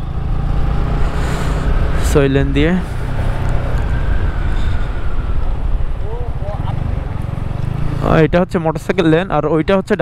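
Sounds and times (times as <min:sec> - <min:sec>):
motorcycle engine: 0:00.0 - 0:09.9
wind rumble on microphone: 0:00.8 - 0:07.9.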